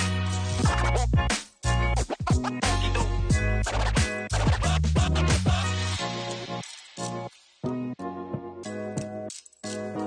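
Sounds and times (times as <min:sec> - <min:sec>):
music with heavy bass line: 0:00.0 - 0:07.3.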